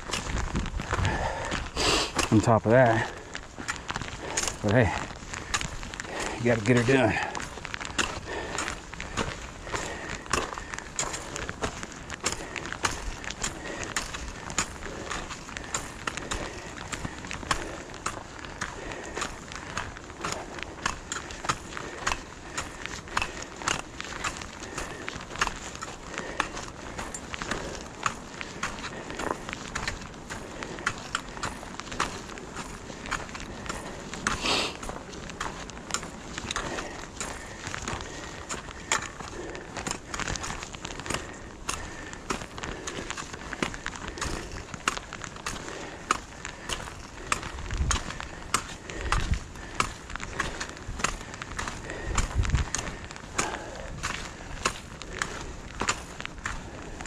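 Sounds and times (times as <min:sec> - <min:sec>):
footsteps on gravel trail: 0:00.0 - 0:57.0.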